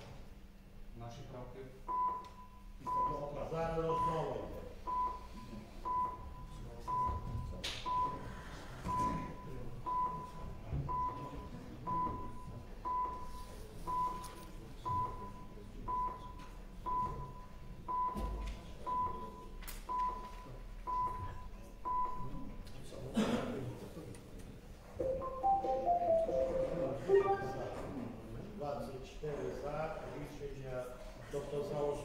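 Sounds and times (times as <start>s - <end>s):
murmur of a hall: 0.0s - 32.0s
electronic voting system beeping: 25.0s - 27.9s.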